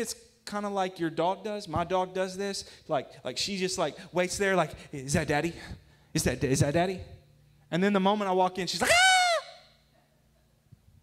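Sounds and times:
man shouting into microphone: 0:08.7 - 0:09.6.

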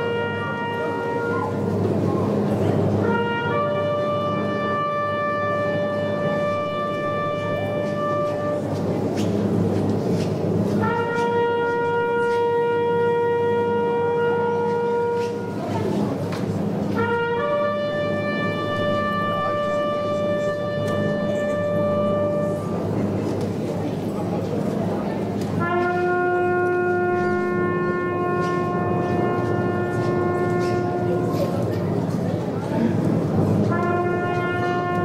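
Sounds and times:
wind instruments holding a note: 0:00.0 - 0:09.0, 0:10.8 - 0:16.2, 0:16.9 - 0:23.2, 0:25.5 - 0:32.0, 0:33.5 - 0:35.0.

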